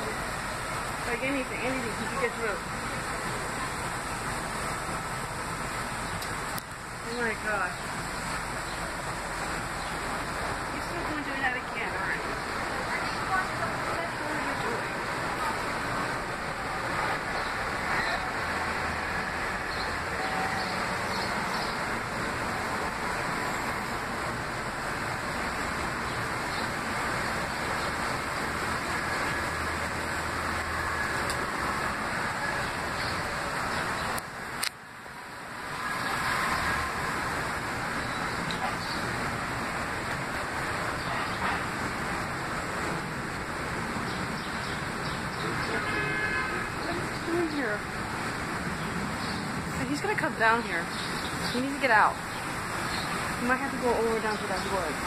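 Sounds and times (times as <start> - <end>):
traffic hum: 0.0 - 55.0.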